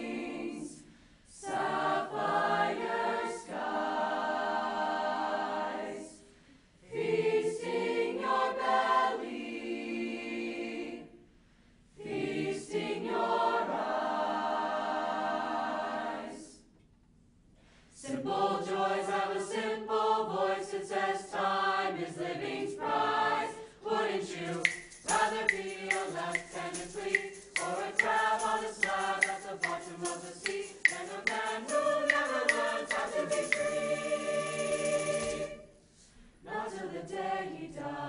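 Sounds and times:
mixed choir singing: 0.0s - 11.2s, 12.0s - 16.7s, 18.0s - 35.8s, 36.4s - 38.0s.

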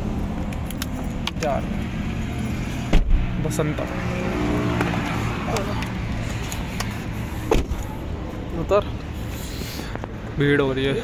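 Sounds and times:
thump: 2.9s - 3.3s, 7.5s - 7.8s.

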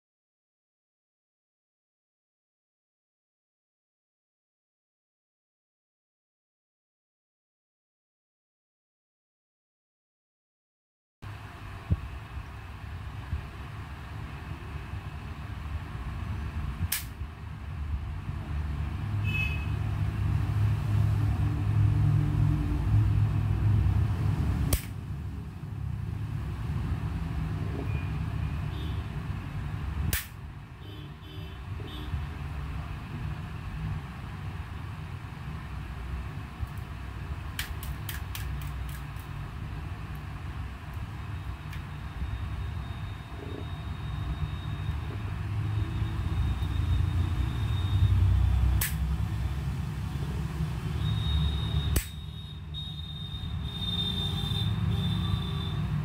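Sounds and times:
sharp clicks: 37.6s - 39.4s, 48.8s - 49.1s, 51.9s - 52.2s.

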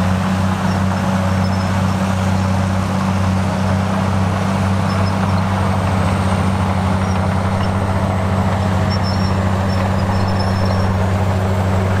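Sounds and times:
diesel machinery engine drone: 0.0s - 12.0s.

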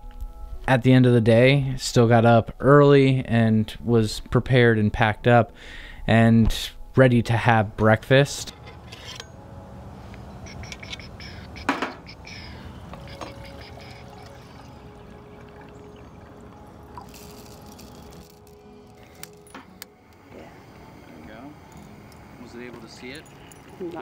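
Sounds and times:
water pouring into a cup: 13.0s - 18.4s.

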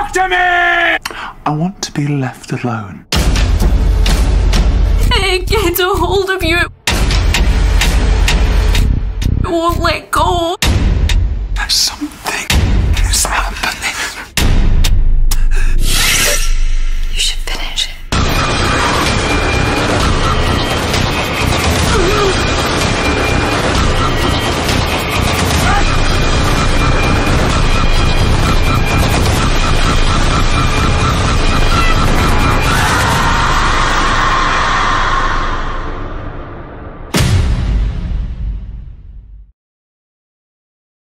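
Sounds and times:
dense wall of noise: 26.0s - 36.3s.

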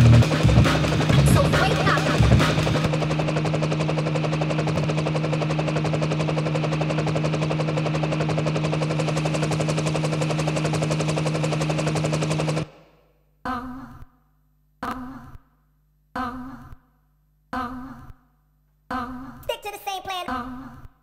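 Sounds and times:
fast electronic drum roll: 0.0s - 13.0s.

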